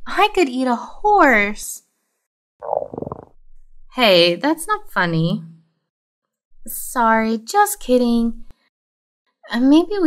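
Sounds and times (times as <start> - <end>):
cartoon stomach growl: 2.6 - 3.2.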